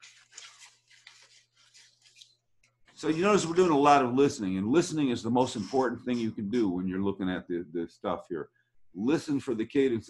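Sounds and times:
paper rustling: 0.0 - 3.7.

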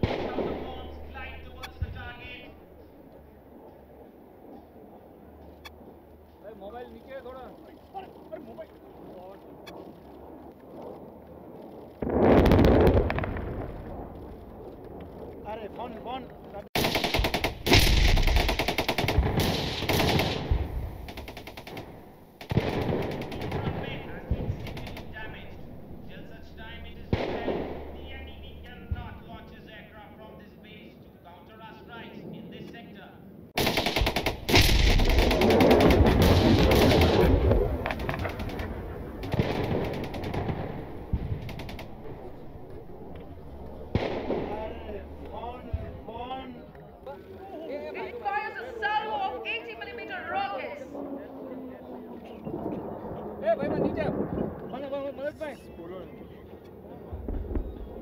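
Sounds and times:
heavy explosion: 0.0 - 2.2, 12.0 - 14.2, 16.8 - 21.1, 21.8 - 29.6, 33.6 - 46.2, 52.5 - 54.6
rapid string of bangs: 0.0 - 2.2, 16.8 - 29.5, 33.6 - 43.0, 43.6 - 46.2.

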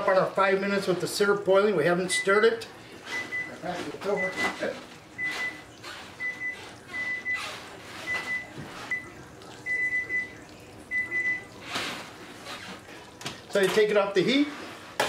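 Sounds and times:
syrup boiling and popping: 0.0 - 15.0.

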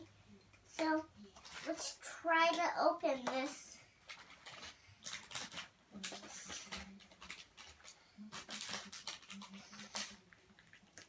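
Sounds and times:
packet crinkling and rustling: 1.3 - 2.0, 3.5 - 11.0.

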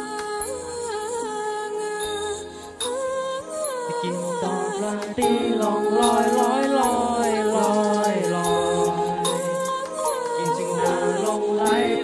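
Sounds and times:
person singing slow melody: 0.0 - 12.0
backing track: 2.3 - 12.0.

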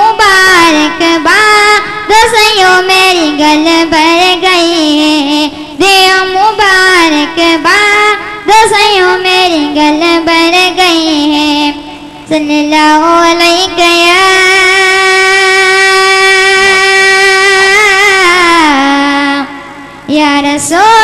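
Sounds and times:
boy singing into microphone: 0.0 - 21.0.

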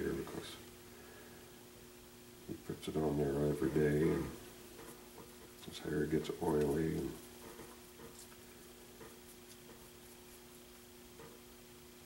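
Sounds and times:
steady low hum: 0.0 - 12.0
paintbrush strokes: 3.6 - 11.4.

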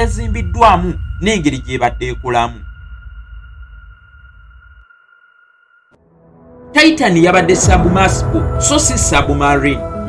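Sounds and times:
low bass pulse: 0.0 - 4.8
high electronic tone: 0.0 - 6.0.

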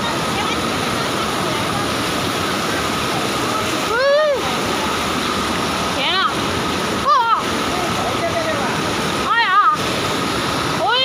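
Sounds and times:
floodwater rushing: 0.0 - 11.0.

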